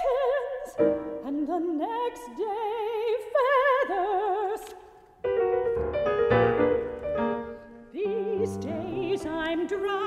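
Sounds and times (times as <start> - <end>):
soprano singing with vibrato: 0.0 - 5.0, 7.8 - 10.0
grand piano accompaniment: 0.1 - 1.9, 5.2 - 10.0.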